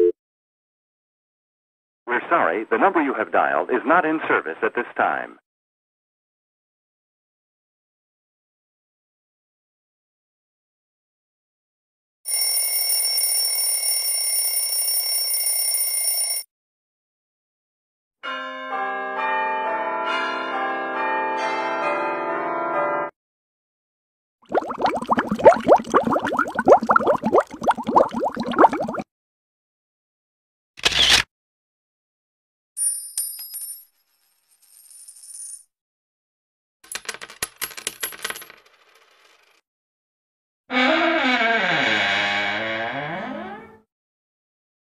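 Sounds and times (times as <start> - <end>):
coin bouncing on concrete: 32.8 - 35.7, 36.9 - 39.6.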